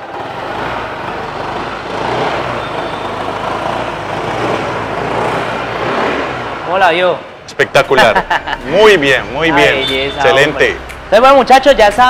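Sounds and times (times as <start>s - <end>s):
scooter engine starting and idling: 0.0s - 6.6s.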